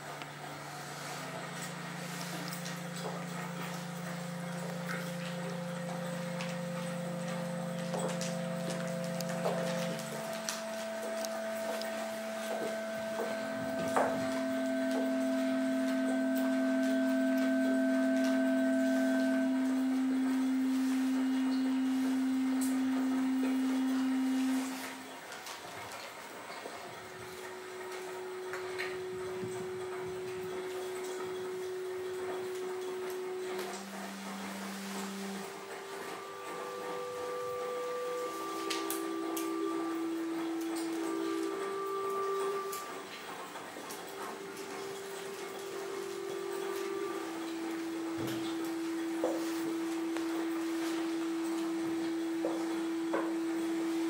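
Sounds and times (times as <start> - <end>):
pure steady tones: 0.0 - 54.0.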